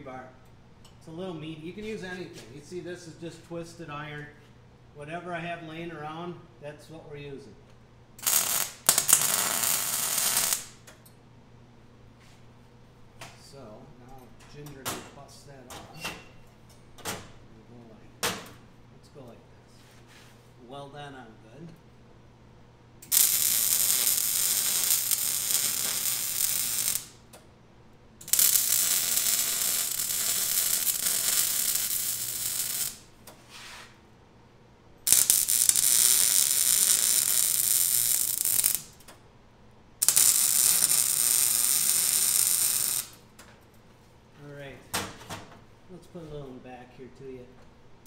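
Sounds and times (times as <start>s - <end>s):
welder arc crackling: 8.2s - 10.9s, 23.0s - 27.4s, 28.2s - 33.3s, 35.0s - 39.1s, 40.0s - 43.3s.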